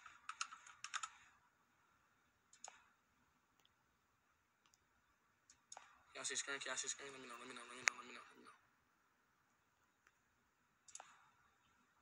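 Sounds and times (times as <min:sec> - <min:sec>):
faint clicks: 0:02.5 - 0:03.8, 0:04.6 - 0:06.0, 0:10.8 - 0:11.8.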